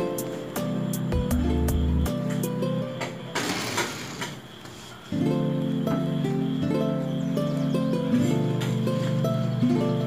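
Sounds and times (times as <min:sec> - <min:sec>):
plucked-string background music: 0:00.0 - 0:04.2, 0:05.1 - 0:10.0
toy car rolling on wooden table: 0:03.4 - 0:04.4.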